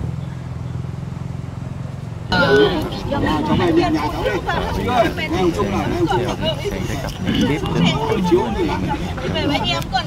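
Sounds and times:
motor engine rumbling: 0:00.0 - 0:10.0.

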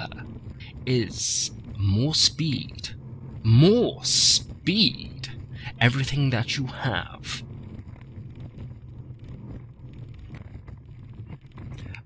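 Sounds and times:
speedboat engine rumble: 0:00.0 - 0:12.0.

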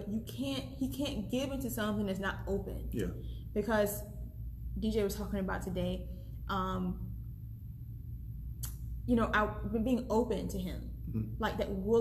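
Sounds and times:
low hum: 0:00.0 - 0:12.0.

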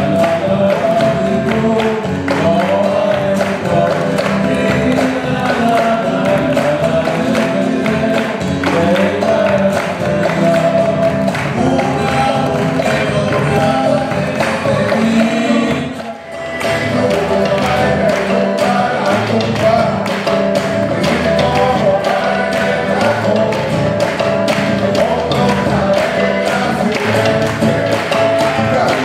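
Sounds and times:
guitar: 0:00.0 - 0:29.0
hand clapping: 0:00.0 - 0:29.0
percussion: 0:00.0 - 0:29.0
person singing: 0:00.0 - 0:29.0.

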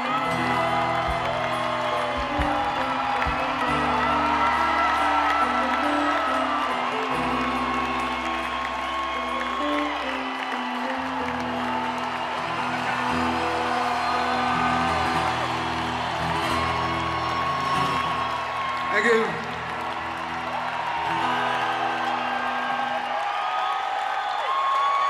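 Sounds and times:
live rock band playing: 0:00.0 - 0:18.8
crowd noise: 0:00.0 - 0:25.0
crowd whooping: 0:00.0 - 0:25.0.

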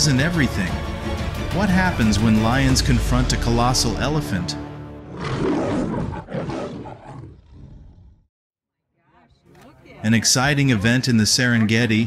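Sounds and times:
lion roaring: 0:05.0 - 0:08.2.

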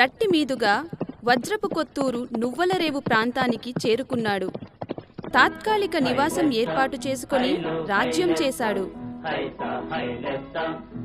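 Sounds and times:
horse hooves clip-clopping: 0:00.0 - 0:07.6.

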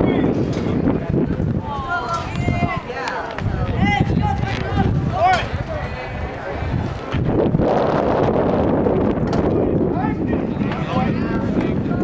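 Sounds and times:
people talking: 0:00.0 - 0:07.6, 0:09.2 - 0:12.0
wind buffeting microphone: 0:00.0 - 0:12.0.

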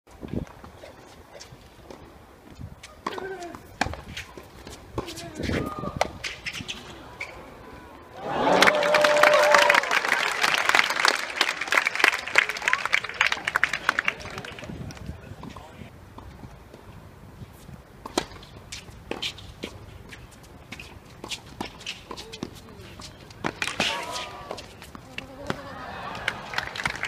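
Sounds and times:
spectators talking: 0:03.2 - 0:09.0, 0:10.0 - 0:15.9, 0:22.1 - 0:27.0
loud held shout: 0:08.1 - 0:10.4
crowd clapping and cheering: 0:08.1 - 0:15.0, 0:25.6 - 0:27.0.

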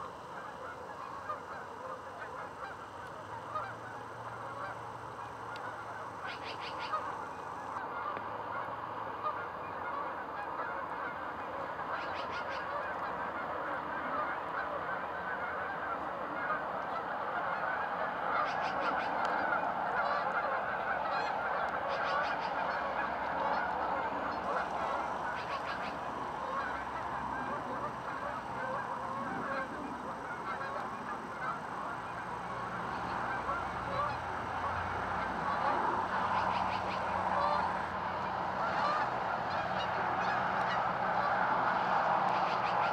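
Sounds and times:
geese honking: 0:00.0 - 0:42.9.

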